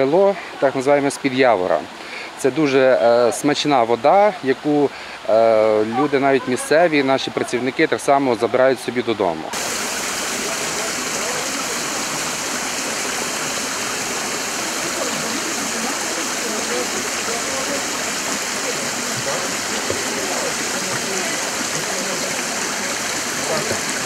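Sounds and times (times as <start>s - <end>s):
water splashing onto stones: 9.5s - 24.0s.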